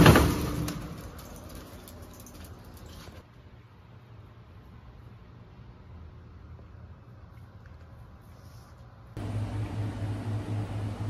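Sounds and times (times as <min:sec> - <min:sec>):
metal screen door rattling: 0:00.0 - 0:03.2.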